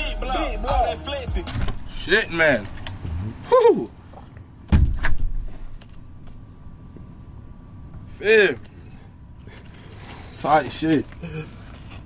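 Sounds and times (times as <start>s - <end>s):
loud thump: 4.7s - 5.4s.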